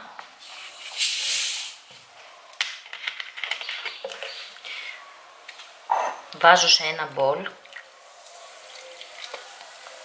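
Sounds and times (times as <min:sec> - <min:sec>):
fizzy drink bottle hissing open: 0:00.4 - 0:01.9.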